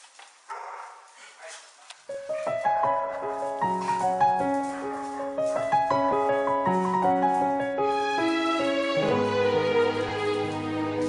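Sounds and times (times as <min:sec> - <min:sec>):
dog barking and growling: 0:00.5 - 0:03.2.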